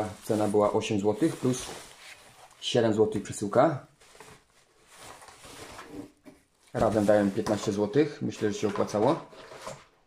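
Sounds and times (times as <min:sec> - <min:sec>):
plastic bag and cardboard rustling: 0:00.0 - 0:03.0, 0:03.9 - 0:10.0.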